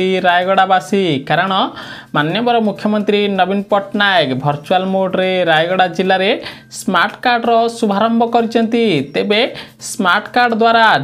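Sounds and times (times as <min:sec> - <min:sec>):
news reader talking: 0:00.0 - 0:11.0.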